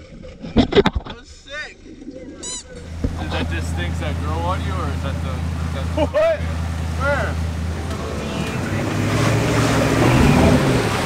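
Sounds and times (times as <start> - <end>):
water splashing: 1.8 - 11.0.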